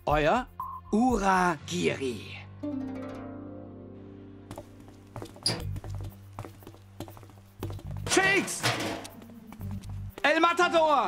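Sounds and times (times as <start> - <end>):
low steady music: 0.0 - 11.0.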